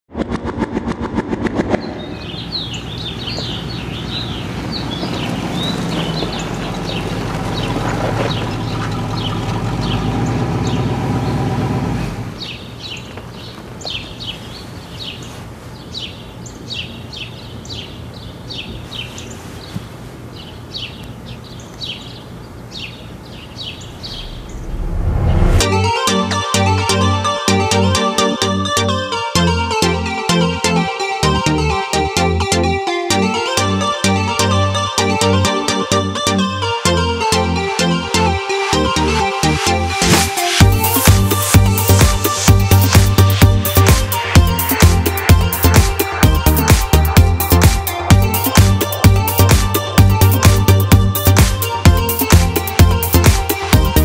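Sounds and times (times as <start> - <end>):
rapid clicking sting: 0.1 - 2.6
birds chirping: 1.7 - 11.4, 12.4 - 25.0, 40.4 - 54.0
low steady drone: 24.0 - 25.8
electronic dance beat: 29.8 - 54.0.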